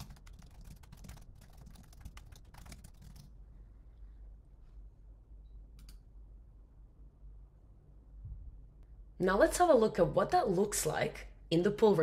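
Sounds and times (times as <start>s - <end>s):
typing on keyboard: 0.0s - 3.3s.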